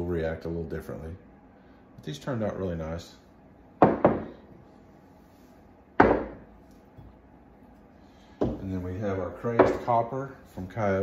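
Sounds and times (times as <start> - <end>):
ceramic mugs knocking on wood: 3.8 - 4.4, 6.0 - 6.5.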